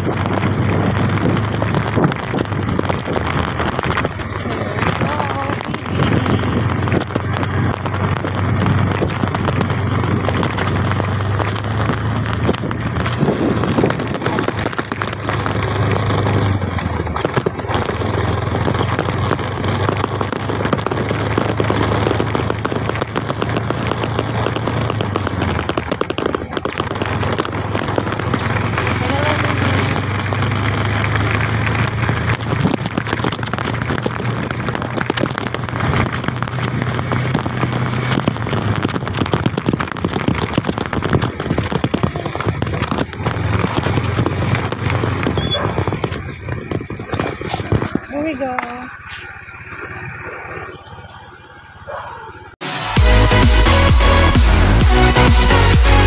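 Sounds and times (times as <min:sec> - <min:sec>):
wind buffeting microphone: 0:00.0 - 0:51.2
vehicle engine hum: 0:00.0 - 0:56.0.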